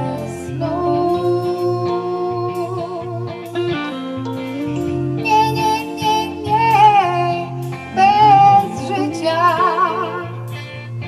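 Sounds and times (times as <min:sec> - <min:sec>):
electric guitars and keyboard: 0:00.0 - 0:11.0
high wavering melody line: 0:00.0 - 0:11.0.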